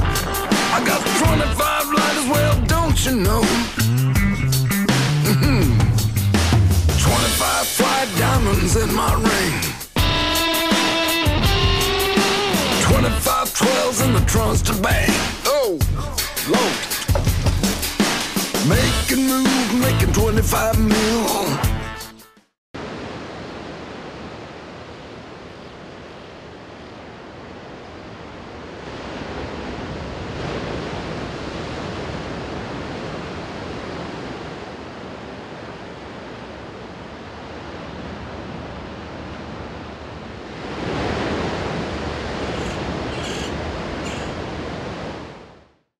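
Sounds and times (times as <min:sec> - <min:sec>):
ocean surf washing on beach: 0:00.0 - 0:03.8, 0:07.1 - 0:10.0, 0:22.8 - 0:45.7.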